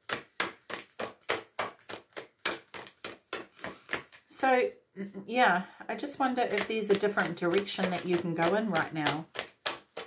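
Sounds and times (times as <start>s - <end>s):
cards being shuffled by hand: 0.0s - 4.3s, 6.4s - 10.0s.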